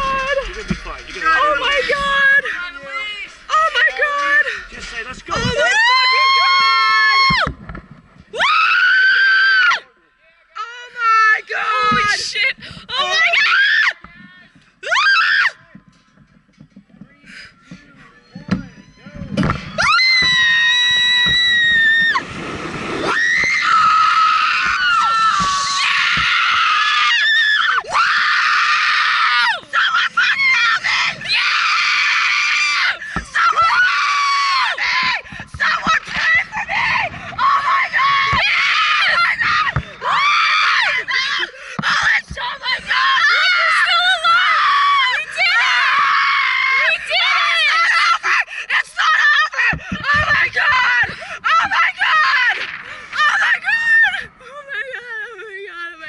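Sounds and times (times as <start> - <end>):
people screaming: 5.3 - 7.5, 8.3 - 9.8, 14.8 - 15.6, 18.5 - 22.3, 23.0 - 54.6
rushing wind: 19.4 - 26.3, 34.8 - 41.2.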